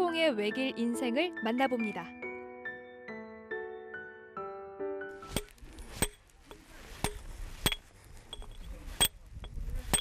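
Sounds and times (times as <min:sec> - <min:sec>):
hammer striking steel chisel: 0:05.3 - 0:10.0.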